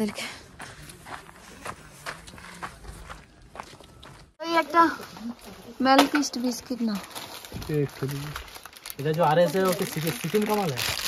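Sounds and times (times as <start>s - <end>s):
footsteps on paved road: 0.0s - 5.6s.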